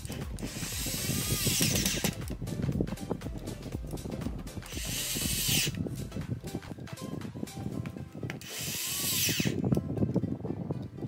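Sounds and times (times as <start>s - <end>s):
electric drill driving screws: 0.4s - 2.2s, 4.7s - 5.8s, 8.4s - 9.6s.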